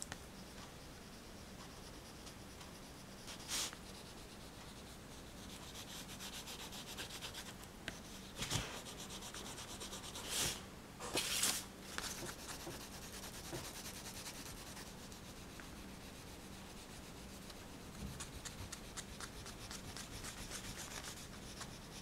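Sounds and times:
pastel scribbling on paper: 0.4s - 10.5s, 11.9s - 22.0s
pastel scraping on paper: 3.2s - 10.6s, 11.2s - 22.0s.

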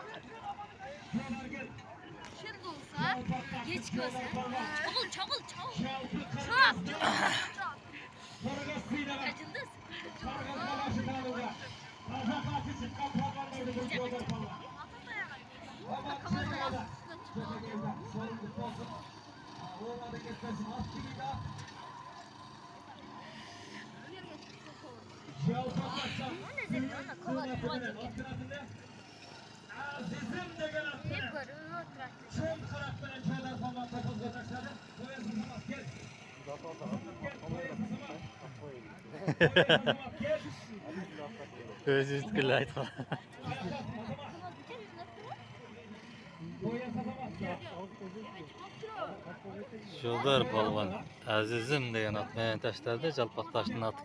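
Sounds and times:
crowd murmur: 0.0s - 54.0s
men talking and calling out: 0.0s - 54.0s.

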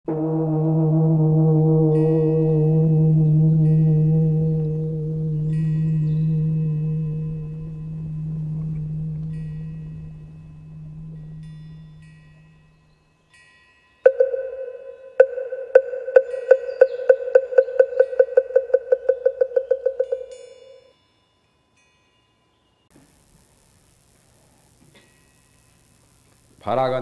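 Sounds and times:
low bell ringing: 1.9s - 22.9s.

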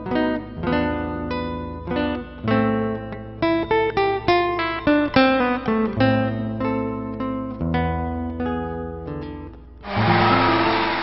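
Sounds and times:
acoustic guitar chord ringing: 9.8s - 11.0s
audience applause: 9.9s - 11.0s.

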